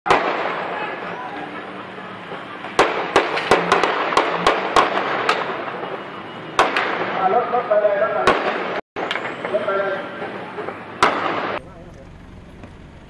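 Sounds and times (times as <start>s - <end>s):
gunshots: 0.1s - 1.0s, 2.7s - 7.4s, 8.2s - 9.6s, 11.0s - 11.6s
crowd voices: 0.4s - 3.8s, 9.2s - 12.5s.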